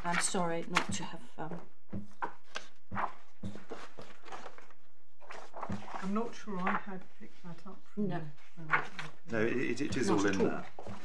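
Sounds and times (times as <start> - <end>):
papers rustling: 0.0 - 7.6, 8.4 - 11.0.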